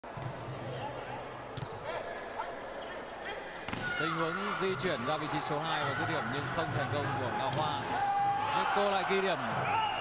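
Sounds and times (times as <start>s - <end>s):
crowd noise in a hall: 0.0s - 10.0s.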